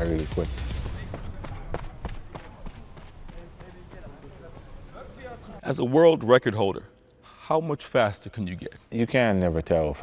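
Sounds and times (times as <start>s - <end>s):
spiked shoes tapping on track: 0.7s - 5.0s.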